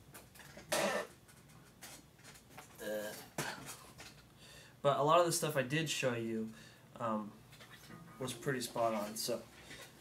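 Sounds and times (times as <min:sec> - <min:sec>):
person coughing: 0:00.7 - 0:01.1.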